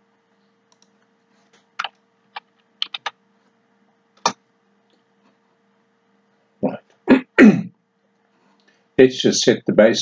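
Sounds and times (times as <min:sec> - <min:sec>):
person clearing throat: 0:07.1 - 0:07.8.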